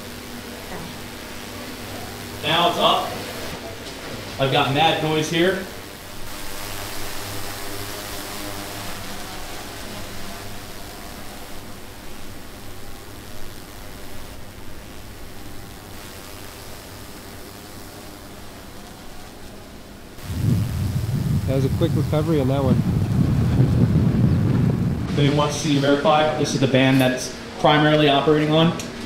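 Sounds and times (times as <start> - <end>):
steady background hiss: 0.0 - 29.0
faint low hum: 4.5 - 26.8.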